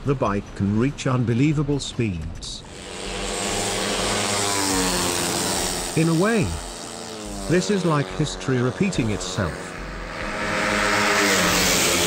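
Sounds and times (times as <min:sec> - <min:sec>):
motorcycle engine buzzing at high revs: 0:02.6 - 0:12.0.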